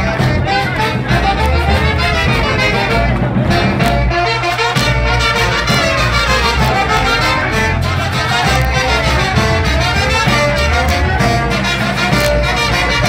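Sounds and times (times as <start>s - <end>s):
live band playing dance tune: 0.0s - 13.0s
trumpets and trombones: 0.0s - 13.0s.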